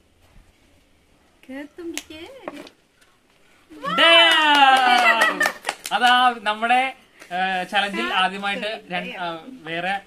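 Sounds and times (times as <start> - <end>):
loud excited shout: 3.8 - 5.7.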